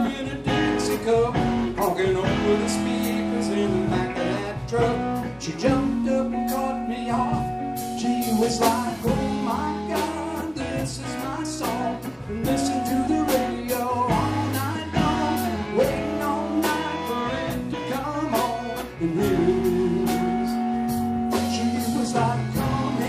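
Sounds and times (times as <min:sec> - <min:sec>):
bass: 0:00.0 - 0:23.0
bending lead guitar line: 0:00.0 - 0:23.0
drum kit steady beat: 0:00.0 - 0:23.0
electric guitars: 0:00.0 - 0:23.0.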